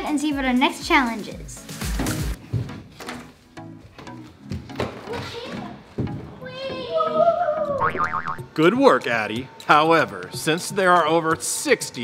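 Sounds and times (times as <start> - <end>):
children's voices and play: 5.1 - 7.8
held pitched tone: 7.8 - 8.4.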